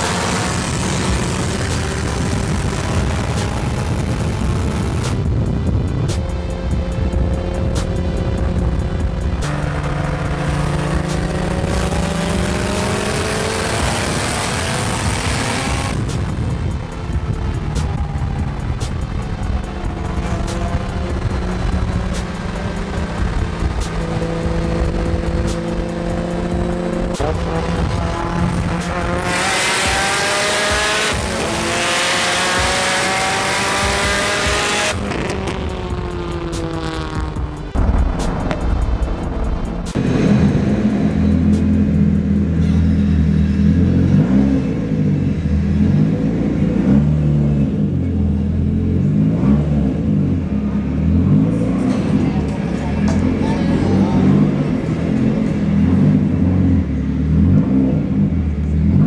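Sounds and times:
music playing: 0.0 - 44.6, 51.2 - 56.7
car engine pulling hard: 0.0 - 59.0.

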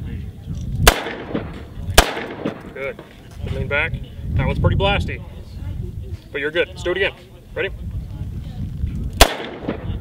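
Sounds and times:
handgun shots with echo: 0.8 - 2.8, 9.2 - 10.0.

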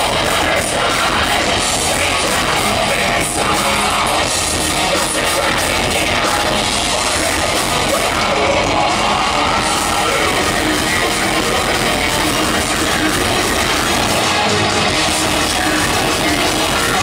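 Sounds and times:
heavy metal band playing live: 0.0 - 17.0.

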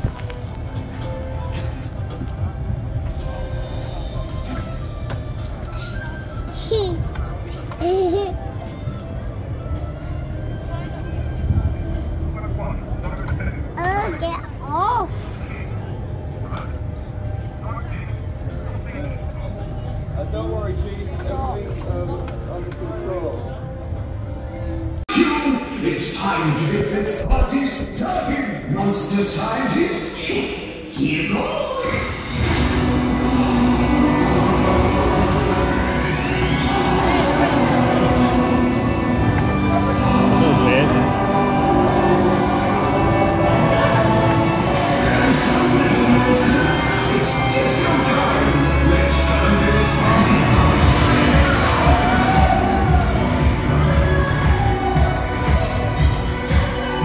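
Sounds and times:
faint music: 0.0 - 57.0
ride car rumbling: 31.0 - 57.0.

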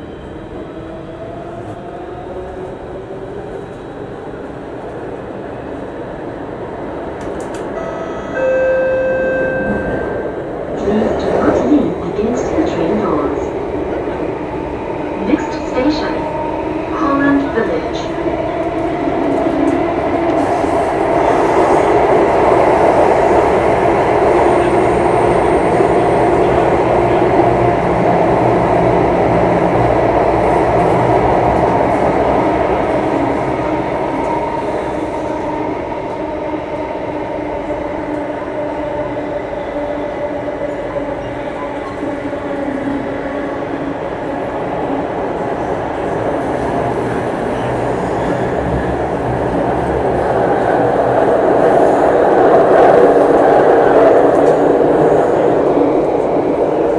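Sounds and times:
train rumbling inside passenger car: 0.0 - 56.9.

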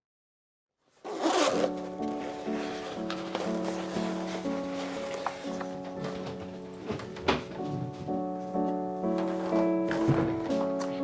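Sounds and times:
zipper on soft carry case: 1.0 - 3.0
background music: 1.1 - 11.0.

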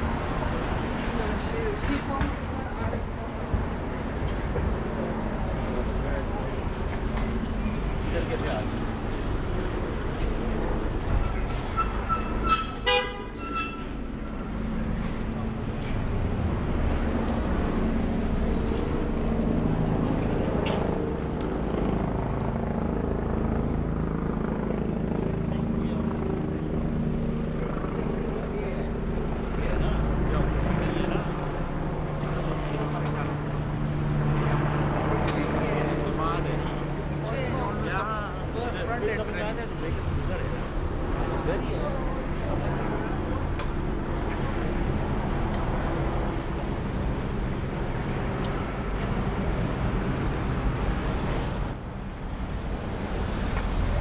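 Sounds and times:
people talking: 1.0 - 4.0, 4.6 - 8.8, 25.2 - 26.7, 27.6 - 33.5, 35.0 - 43.7
car engines passing: 27.6 - 54.0.

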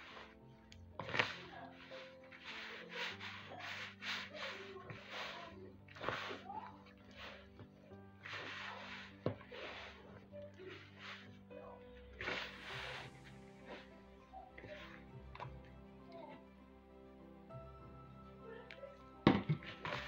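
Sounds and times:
hands pressing crumbly dough: 0.0 - 16.4
background music: 0.0 - 20.0.

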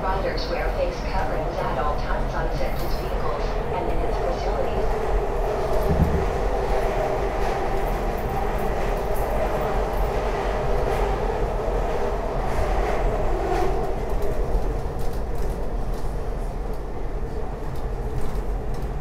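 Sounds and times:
train wheels rumbling on rails: 0.0 - 19.0
thump: 5.9 - 6.3.

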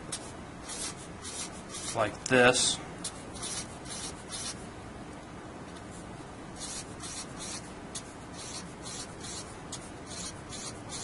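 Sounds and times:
marker pen scratching: 0.2 - 2.0, 3.0 - 4.6, 6.6 - 11.0.

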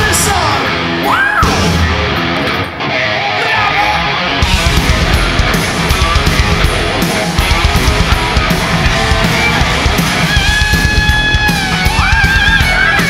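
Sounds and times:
lead guitar with vibrato: 0.0 - 13.0
metal band playing live: 0.0 - 13.0.

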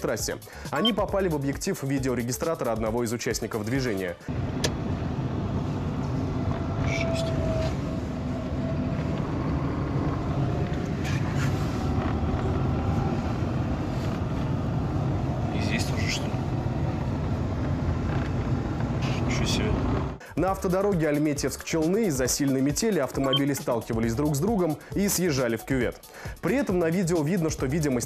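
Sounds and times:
road and engine noise: 3.5 - 20.4.

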